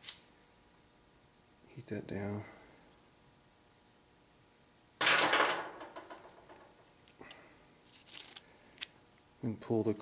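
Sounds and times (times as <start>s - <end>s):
small clicks and scrapes: 7.8s - 8.9s.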